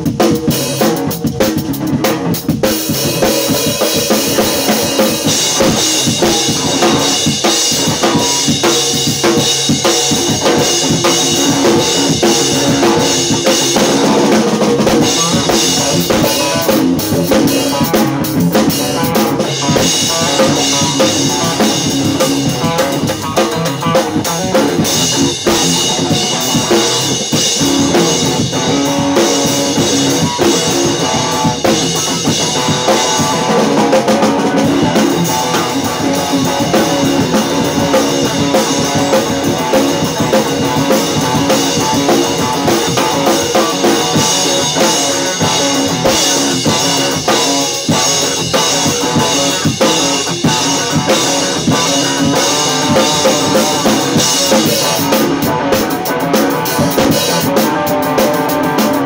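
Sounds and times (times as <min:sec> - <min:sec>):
drum and cymbal hits: 0:00.0 - 0:59.0
electric guitar: 0:00.0 - 0:59.0.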